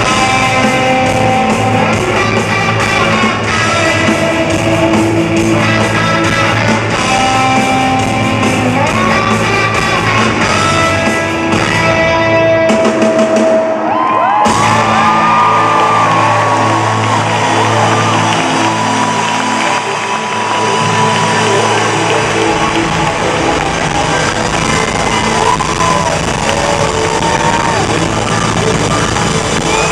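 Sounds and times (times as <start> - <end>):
electric guitar bending notes: 0.0 - 13.7, 14.5 - 29.9
crowd whooping and cheering: 0.0 - 29.9
live rock band playing: 0.0 - 29.9.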